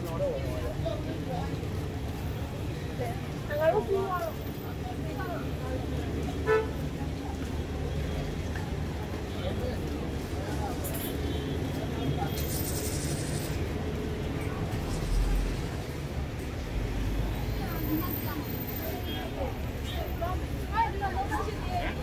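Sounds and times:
passers-by talking: 0.0 - 22.0
traffic rumble: 0.0 - 22.0.

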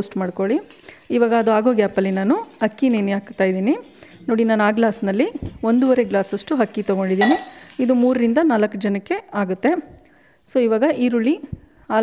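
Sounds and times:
woman talking: 0.0 - 12.0
spoon clinking against frying pan: 7.2 - 7.8.

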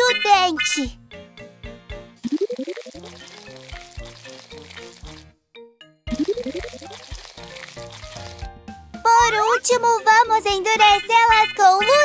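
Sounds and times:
children's music: 0.0 - 12.0.

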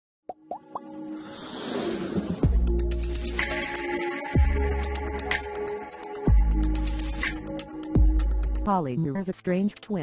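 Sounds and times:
quick pops rising in pitch: 0.3 - 1.0
whoosh: 1.2 - 2.6
intro music: 2.2 - 8.7.

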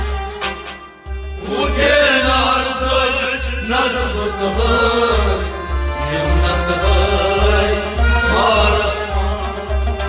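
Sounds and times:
instrumental accompaniment: 0.0 - 10.0
man singing chant-like melody: 1.4 - 9.8.

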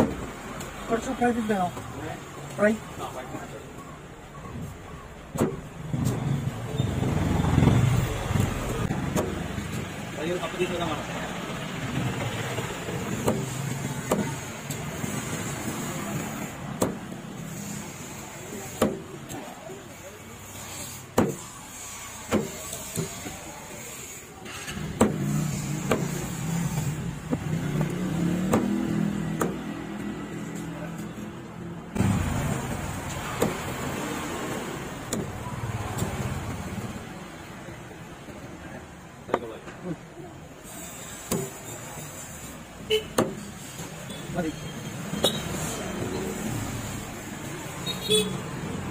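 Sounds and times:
knife chopping on wooden block: 13.2 - 14.4, 25.8 - 26.2.

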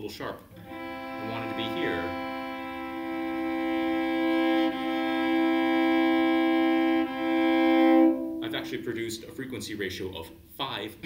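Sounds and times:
cello bowing double-stop: 0.6 - 9.3.

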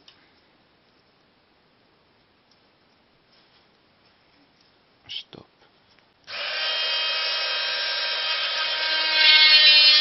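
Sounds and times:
electric drill whining: 6.3 - 10.0.

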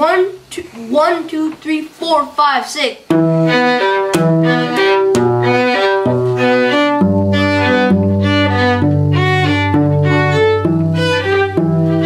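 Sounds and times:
bowed string melody: 3.1 - 12.0
cello holding low notes: 3.1 - 12.0.

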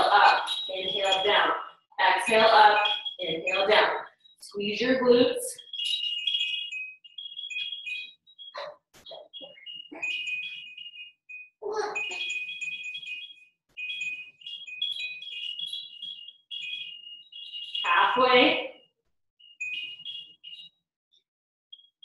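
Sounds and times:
high-pitched electronic chiming tune: 5.1 - 18.6.

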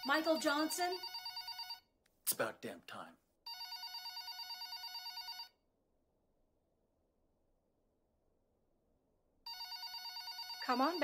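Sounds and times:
telephone ringing with warble: 0.0 - 1.8, 3.5 - 5.6, 9.5 - 11.0.

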